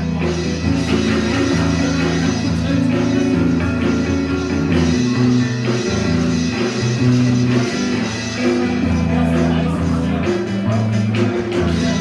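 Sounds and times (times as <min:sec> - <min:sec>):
guitar chords: 0:00.0 - 0:12.0
live rock band playing: 0:00.0 - 0:12.0.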